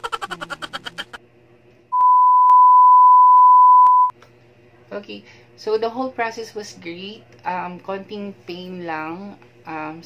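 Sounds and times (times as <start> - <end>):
censor bleep tone: 1.9 - 4.1.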